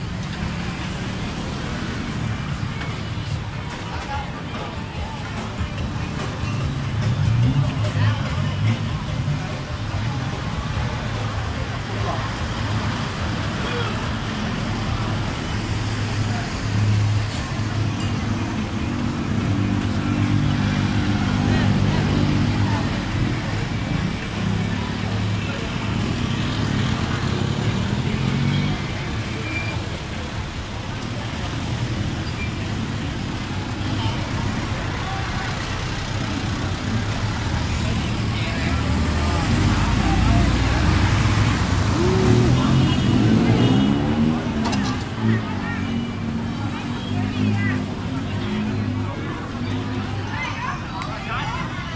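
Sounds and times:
loud vehicle engine: 0.0 - 51.9
people's voices: 0.0 - 51.9
vehicles driving past: 0.0 - 51.9.

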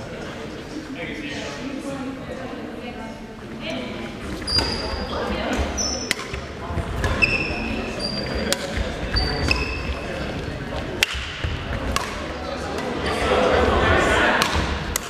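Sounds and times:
shoe squeaks on floor: 4.4 - 6.4, 7.0 - 10.5
racket striking shuttlecock: 5.5 - 7.2, 8.5 - 8.8, 11.0 - 12.3, 14.4 - 15.0.

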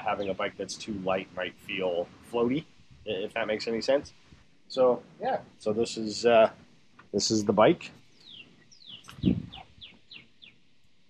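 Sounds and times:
songbird whistling: 8.2 - 10.6.

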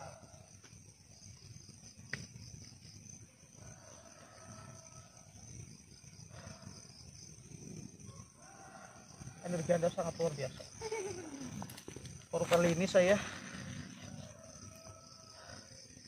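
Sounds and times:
insects chirring: 0.0 - 16.0.

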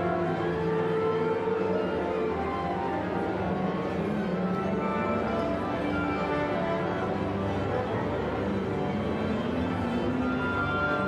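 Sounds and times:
orchestra playing sustained chords: 0.0 - 11.0.

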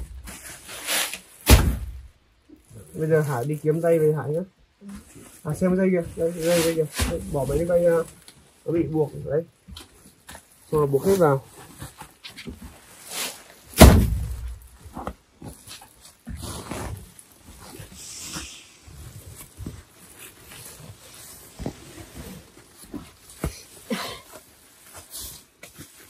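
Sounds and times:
sack thump: 1.1 - 2.1, 6.2 - 7.8, 13.8 - 14.8
sack fabric rustling: 9.5 - 26.0.

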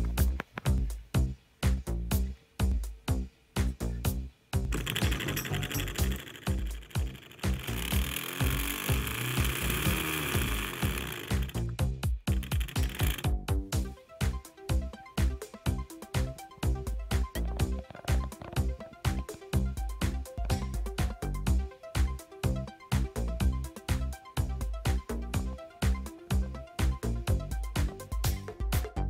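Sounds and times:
background music with beat: 0.0 - 29.0
small motor spinning: 4.7 - 11.7, 12.3 - 13.4.

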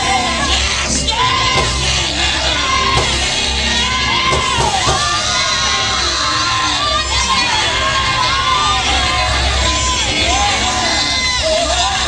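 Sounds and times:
congregation shouting and cheering: 0.0 - 12.0
live gospel band: 0.0 - 12.0
voices singing: 0.0 - 12.0.

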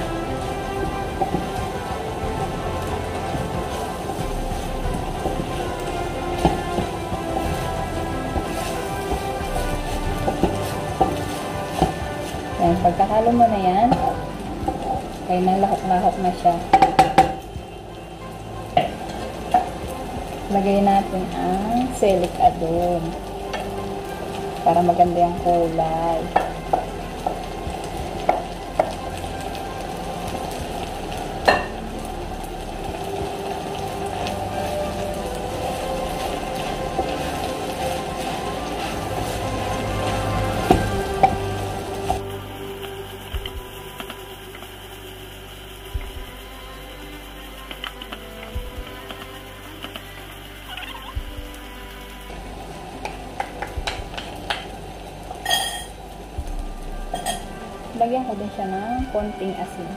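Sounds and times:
food sizzling in frying pan: 0.0 - 59.9.

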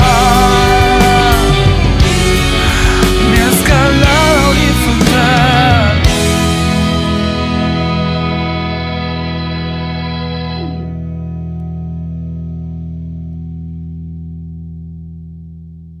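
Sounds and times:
electric guitar chord ringing: 0.0 - 15.6.

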